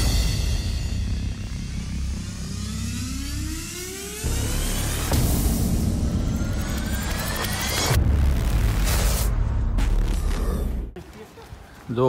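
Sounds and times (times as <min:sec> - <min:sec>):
rising sweeps: 0:00.2 - 0:10.9.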